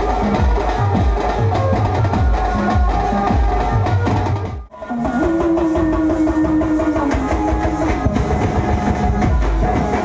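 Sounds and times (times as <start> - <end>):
fast drumming: 0.0 - 10.0.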